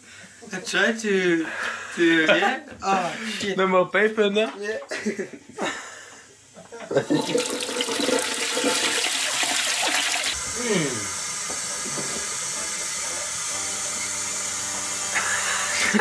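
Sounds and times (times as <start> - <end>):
laughter: 4.9 - 7.5, 15.7 - 16.0
toilet flushing: 7.0 - 10.4.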